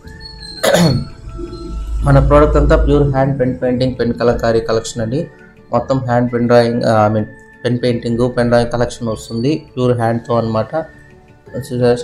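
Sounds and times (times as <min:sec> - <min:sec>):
background music: 0:00.0 - 0:12.0
person coughing: 0:00.6 - 0:01.1.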